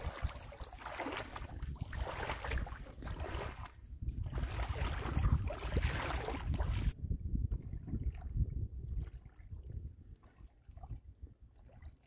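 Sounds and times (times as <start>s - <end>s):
boots sloshing through mud: 0.0s - 7.0s
mud squelches and drips: 0.0s - 7.0s
wind on microphone: 0.0s - 12.0s.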